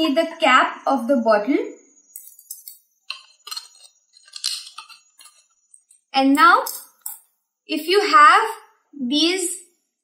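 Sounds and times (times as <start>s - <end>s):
plastic crinkling and clicking: 3.1s - 5.9s.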